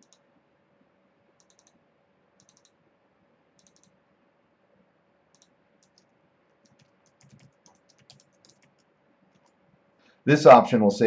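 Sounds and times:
faint typing on computer keyboard: 0:00.0 - 0:00.3, 0:01.4 - 0:01.8, 0:02.4 - 0:02.8, 0:03.6 - 0:04.0, 0:05.3 - 0:09.8.

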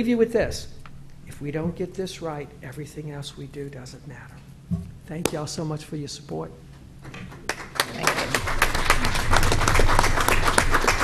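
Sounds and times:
small group applauding: 0:07.3 - 0:11.0.

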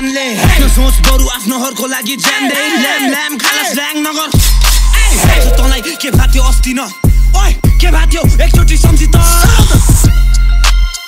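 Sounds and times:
rapping over a beat: 0:00.0 - 0:10.2
deep sub-bass notes: 0:04.9 - 0:06.5.

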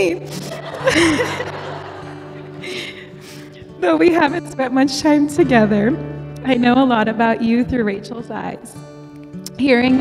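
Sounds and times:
soft background music: 0:00.0 - 0:10.0
guests laughing: 0:00.3 - 0:03.6.

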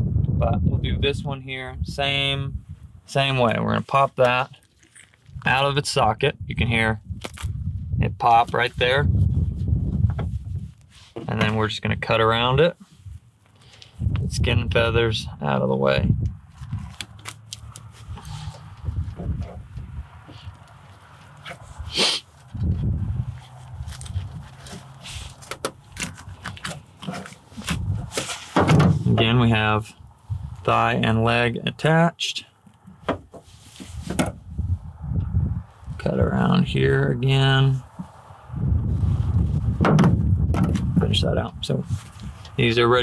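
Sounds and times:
wind buffeting microphone: 0:00.0 - 0:03.1, 0:06.3 - 0:10.8, 0:14.0 - 0:17.0, 0:17.6 - 0:20.6, 0:21.6 - 0:24.6, 0:27.6 - 0:28.2, 0:30.0 - 0:30.7, 0:33.9 - 0:37.0, 0:37.8 - 0:43.0
low rumbling: 0:17.6 - 0:21.9, 0:22.5 - 0:25.2, 0:28.8 - 0:31.3, 0:34.4 - 0:42.7.

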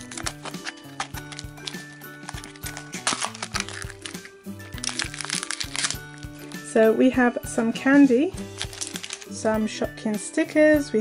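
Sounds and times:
cellophane crinkling: 0:00.0 - 0:06.6, 0:08.4 - 0:09.4
background music: 0:00.0 - 0:11.0.

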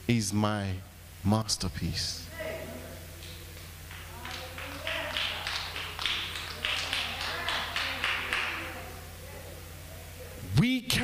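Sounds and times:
people clapping hands: 0:03.2 - 0:09.0.

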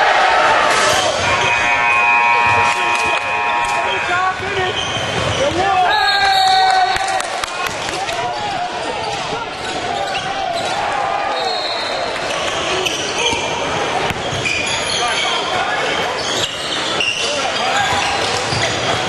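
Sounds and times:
indistinct voices: 0:00.0 - 0:14.0
sneakers squeaking: 0:00.7 - 0:07.1, 0:08.5 - 0:19.0.

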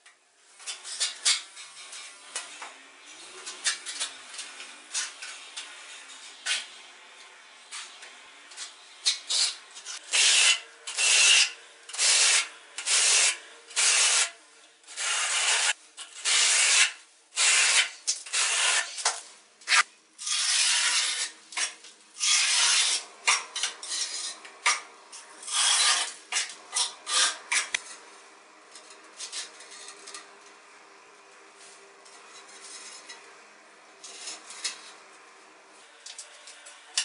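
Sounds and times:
trowel scraping adhesive on wall: 0:09.0 - 0:24.8, 0:25.4 - 0:28.0, 0:34.0 - 0:35.0.

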